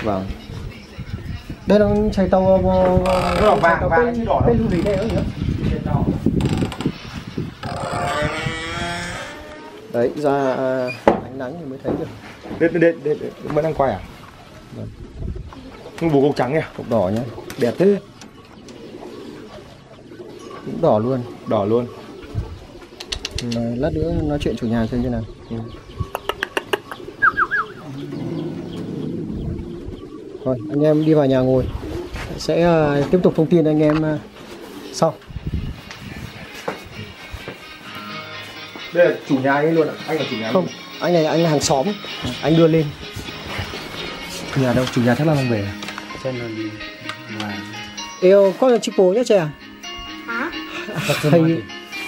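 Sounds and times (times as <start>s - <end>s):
birds ticking and chirping: 0.0s - 52.0s
low bird call: 25.4s - 30.8s.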